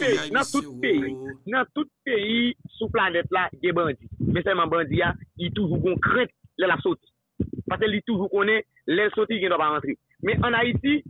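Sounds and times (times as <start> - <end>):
man talking: 0.0 - 1.6.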